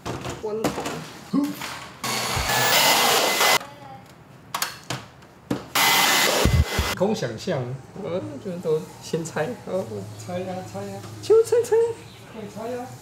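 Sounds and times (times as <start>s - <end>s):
electric motor air hiss: 2.0s - 3.6s, 5.8s - 7.0s.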